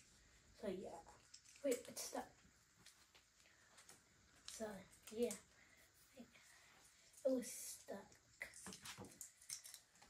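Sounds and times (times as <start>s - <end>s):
faint handling clicks and rustles: 0.0s - 10.0s.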